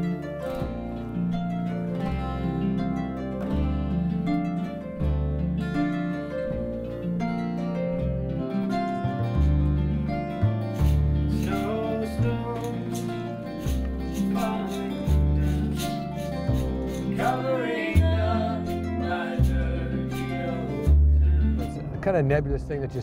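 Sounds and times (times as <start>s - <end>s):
double bass deep notes: 0.0s - 23.0s
fingerstyle acoustic guitar: 0.0s - 23.0s
plucked strings: 0.0s - 23.0s.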